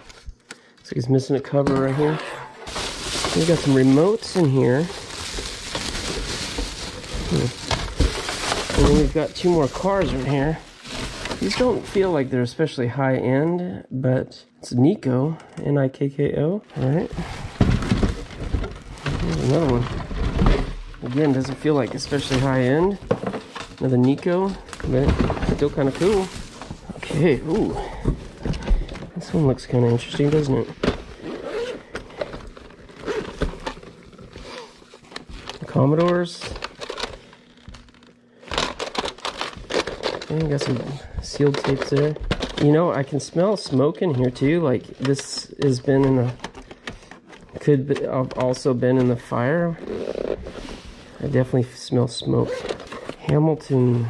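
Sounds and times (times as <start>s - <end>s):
plastic bag rustling: 1.8s - 12.4s, 16.7s - 47.7s
case handling noise: 2.6s - 11.8s.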